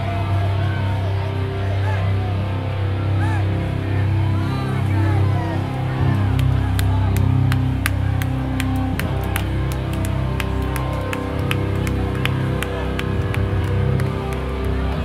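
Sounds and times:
distorted guitar and bass chords: 0:00.0 - 0:15.0.

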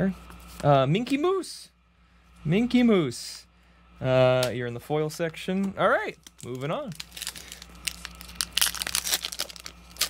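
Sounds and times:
foil wrapper crinkling and tearing: 0:06.1 - 0:10.0.

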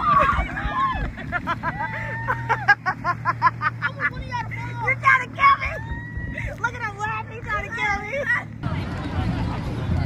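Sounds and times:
motorboat engine drone: 0:00.0 - 0:10.0
people laughing and shouting: 0:00.0 - 0:10.0.

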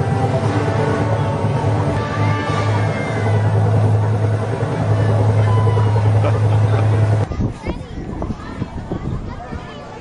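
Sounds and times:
faint voices: 0:00.0 - 0:10.0
outdoor crowd chatter: 0:00.0 - 0:10.0
ride machinery humming: 0:00.0 - 0:10.0.

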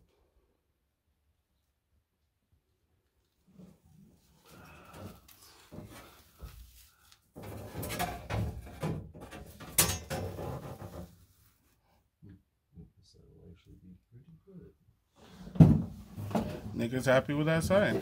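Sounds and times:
knocks and scrapes of handling: 0:04.8 - 0:11.7, 0:15.2 - 0:16.9.

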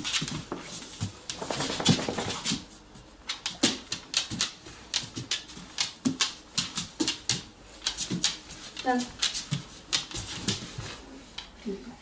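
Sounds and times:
dog claws clicking on wood floor: 0:00.0 - 0:10.8.

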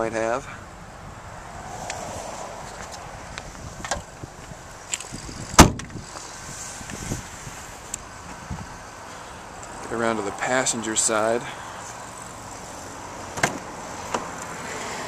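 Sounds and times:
car trunk lid slamming: 0:05.6 - 0:06.0, 0:13.3 - 0:14.3.

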